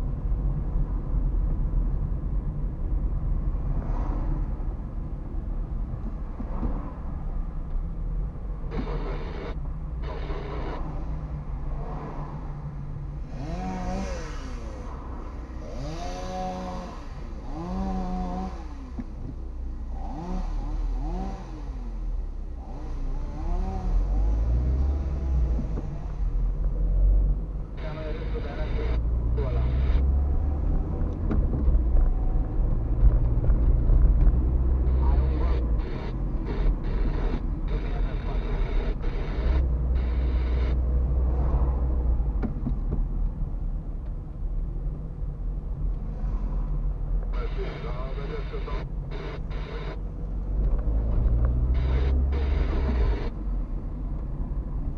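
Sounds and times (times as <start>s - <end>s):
car engine and road noise: 0.0s - 54.9s.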